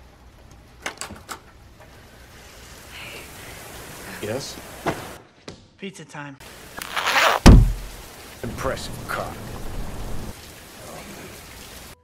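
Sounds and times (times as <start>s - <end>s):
steady rain hiss: 0.0s - 5.2s, 6.4s - 12.0s.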